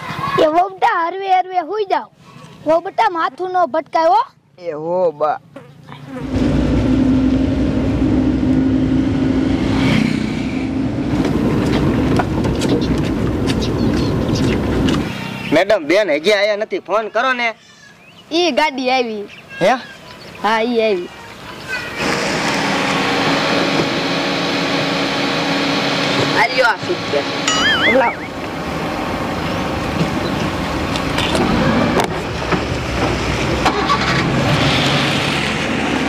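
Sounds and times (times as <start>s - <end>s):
road noise: 0.0s - 36.0s
car engine: 6.2s - 15.7s, 20.0s - 36.0s
van engine running: 10.6s - 15.6s.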